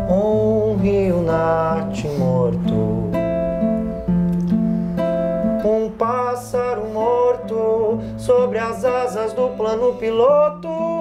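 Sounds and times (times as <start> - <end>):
acoustic guitar strumming chords: 0.0 - 11.0.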